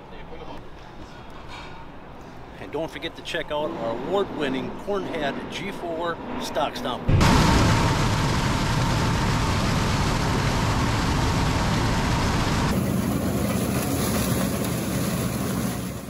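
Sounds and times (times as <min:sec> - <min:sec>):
combine harvester running: 0:07.1 - 0:16.0.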